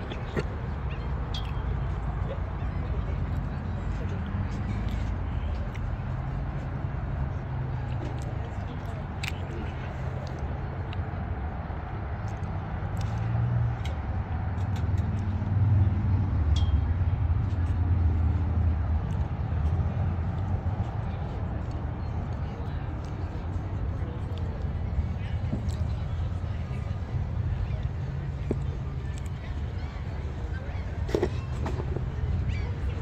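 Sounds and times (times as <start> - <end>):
people talking: 0.0 - 14.0, 15.0 - 33.0.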